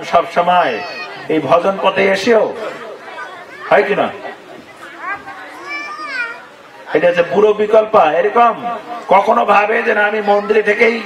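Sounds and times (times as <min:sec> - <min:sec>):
child calling out: 0:00.6 - 0:01.3, 0:03.1 - 0:03.9, 0:05.0 - 0:06.6, 0:10.1 - 0:11.0.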